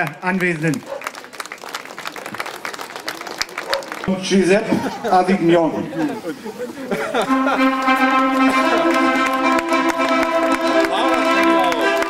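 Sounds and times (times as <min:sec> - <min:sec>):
group of people applauding: 0:00.0 - 0:05.0, 0:07.2 - 0:12.0.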